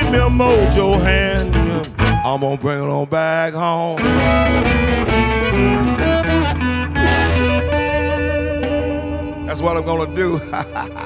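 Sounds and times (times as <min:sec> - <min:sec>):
bass and drums: 0:00.0 - 0:02.3, 0:04.0 - 0:11.0
electric guitar with bent notes: 0:00.0 - 0:11.0.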